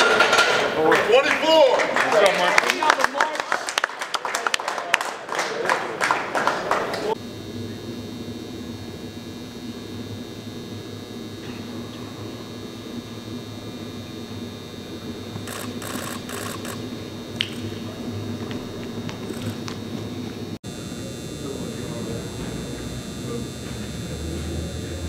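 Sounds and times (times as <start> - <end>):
steady hum: 7.1 - 25.0.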